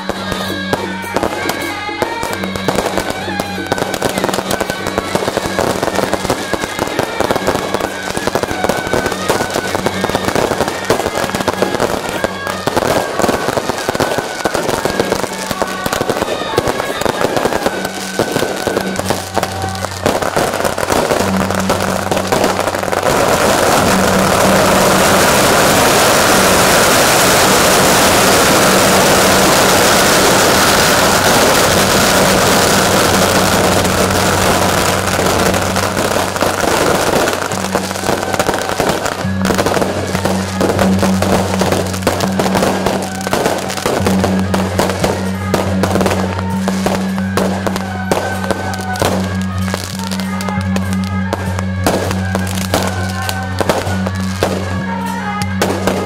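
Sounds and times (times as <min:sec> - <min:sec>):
firecrackers crackling and banging: 0:00.0 - 0:56.0.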